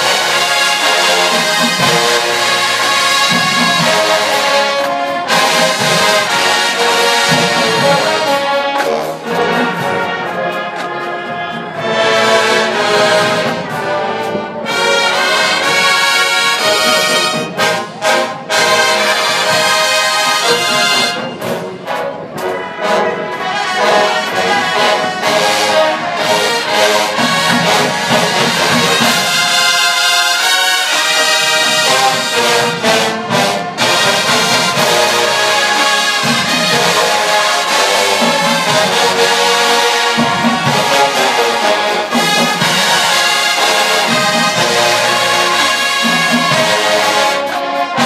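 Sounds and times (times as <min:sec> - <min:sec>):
marching band playing: 0:00.0 - 0:48.0.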